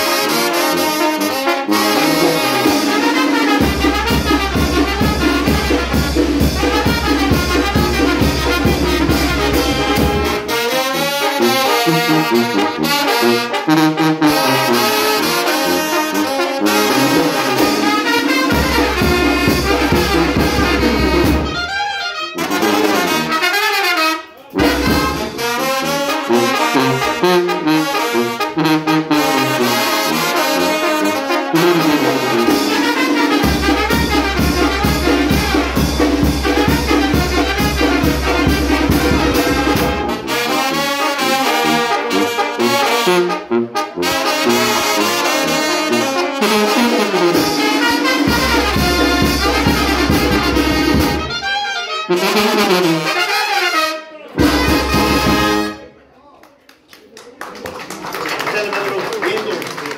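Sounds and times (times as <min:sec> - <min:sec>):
brass band playing: 0:00.0 - 0:56.0.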